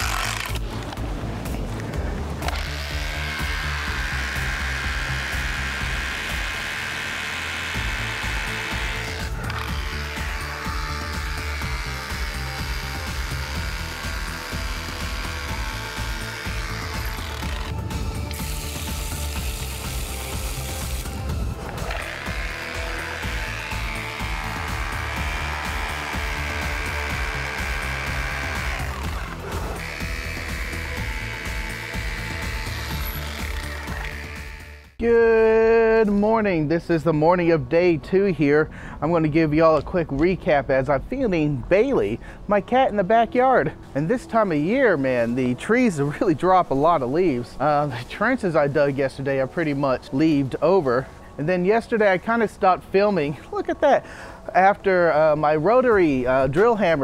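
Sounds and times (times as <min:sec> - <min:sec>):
rotary hammer drill hammering: 0:00.0 - 0:01.0, 0:02.4 - 0:35.0
background music: 0:00.0 - 0:57.0
garden hose spraying water: 0:18.2 - 0:29.5.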